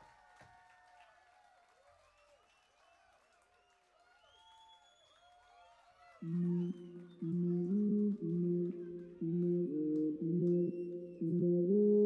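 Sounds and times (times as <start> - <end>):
electronic dub band music: 6.2 - 12.0.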